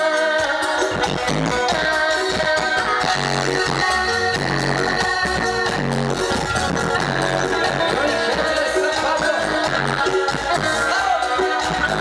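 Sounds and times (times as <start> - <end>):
bass guitar line: 0.0 - 12.0
drums and percussion: 0.0 - 12.0
electronic keyboard melody: 0.0 - 12.0.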